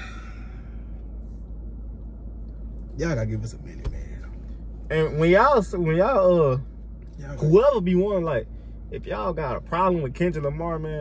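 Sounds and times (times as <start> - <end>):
man sighing heavily: 0.0 - 0.8
faint breath: 0.0 - 1.3
low steady rumble: 0.0 - 11.0.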